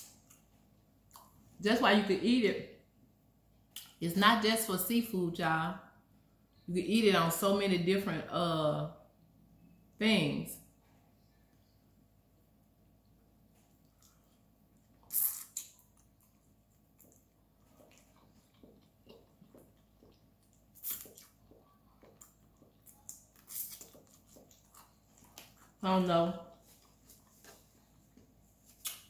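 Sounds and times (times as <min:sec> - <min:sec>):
chewing: 0:13.6 - 0:25.8
wet mouth smacks: 0:15.0 - 0:16.4, 0:17.0 - 0:24.8, 0:28.8 - 0:29.0.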